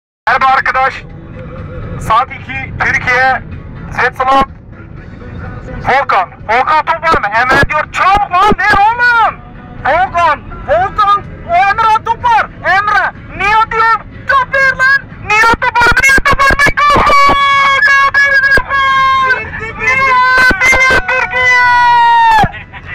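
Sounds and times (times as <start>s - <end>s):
man shouting through megaphone: 0.3s - 1.0s, 5.8s - 22.9s.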